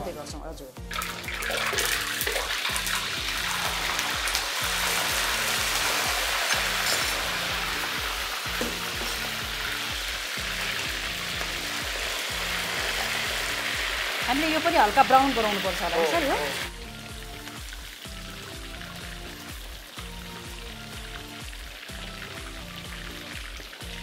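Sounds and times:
background music with beat: 0:00.0 - 0:15.1, 0:15.8 - 0:24.0
chicken sizzling in hot oil: 0:00.9 - 0:24.0.

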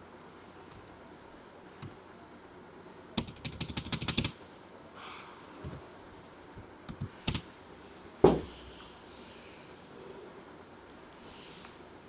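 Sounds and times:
computer keyboard typing: 0:03.2 - 0:04.4, 0:06.9 - 0:07.5.

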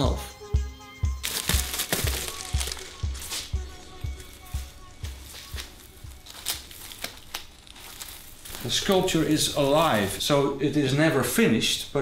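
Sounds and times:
sharp crackles: 0:01.2 - 0:03.6, 0:05.2 - 0:10.2
leaves rustling and crinkling: 0:01.2 - 0:10.3.

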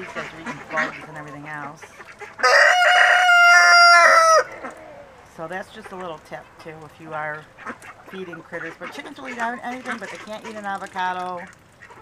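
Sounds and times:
rooster crowing: 0:02.4 - 0:05.1.

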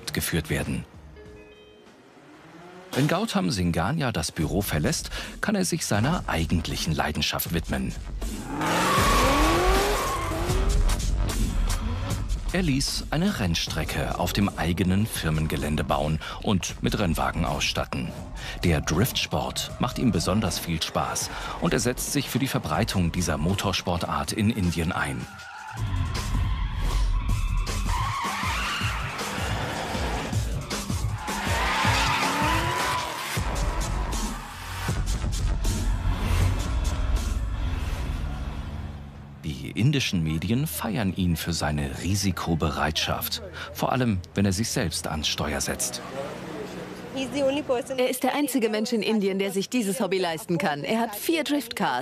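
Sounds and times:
tyres skidding: 0:00.0 - 0:05.2, 0:07.9 - 0:39.8, 0:43.0 - 0:48.6
car engine revving: 0:01.9 - 0:03.3, 0:08.0 - 0:12.5, 0:25.7 - 0:39.4, 0:45.2 - 0:48.0
music track with a beat: 0:09.0 - 0:12.5, 0:27.2 - 0:37.4.

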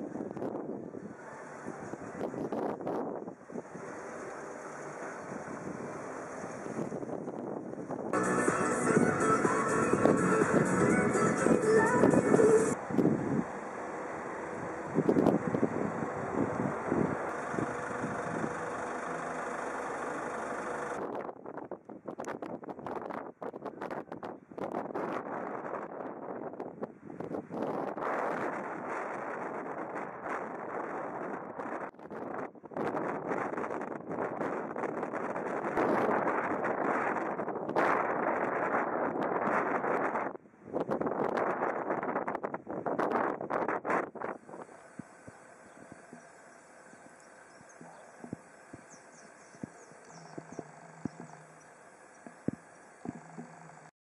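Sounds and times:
wind buffeting microphone: 0:00.0 - 0:13.6, 0:14.4 - 0:19.0, 0:20.9 - 0:53.9.

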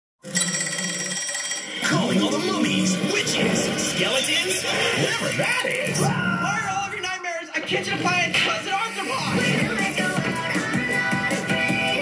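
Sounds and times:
music: 0:01.9 - 0:12.0.

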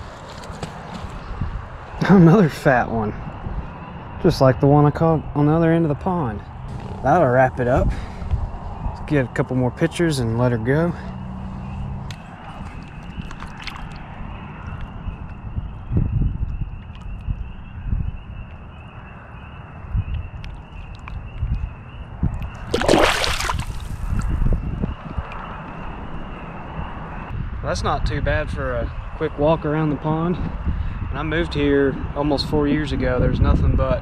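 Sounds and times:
wind rumble on microphone: 0:00.0 - 0:34.0
water sloshing and gurgling: 0:11.7 - 0:14.9, 0:22.3 - 0:24.4
loud splash: 0:22.6 - 0:24.2.

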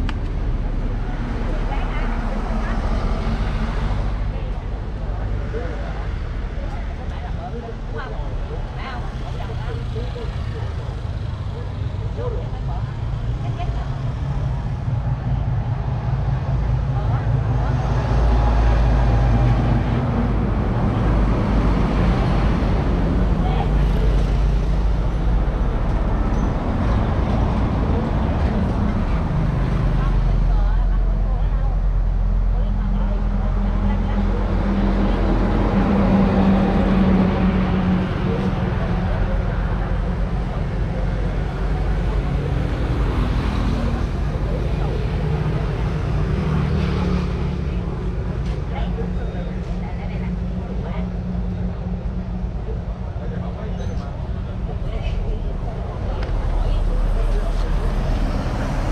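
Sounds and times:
road traffic noise: 0:00.0 - 0:58.9.

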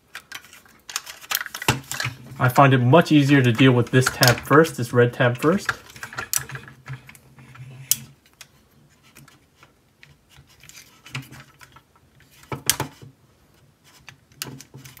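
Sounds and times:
action figure parts clicking and snapping: 0:00.1 - 0:02.1.

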